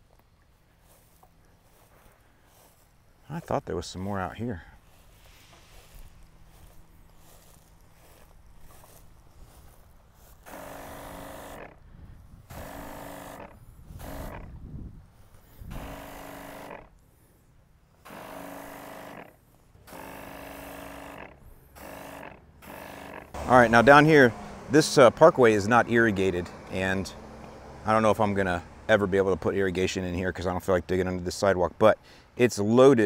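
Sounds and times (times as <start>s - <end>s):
weed sprayer humming and hissing: 0.0s - 28.8s.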